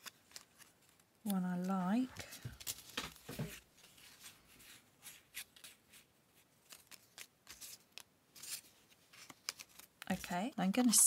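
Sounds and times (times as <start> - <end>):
light ticks of paper pieces: 0.0 - 5.8, 6.6 - 11.0
paper rustling: 0.0 - 11.0.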